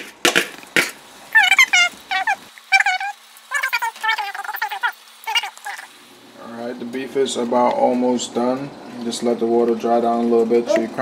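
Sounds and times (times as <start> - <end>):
high-pitched wavering calls: 1.3 - 5.9.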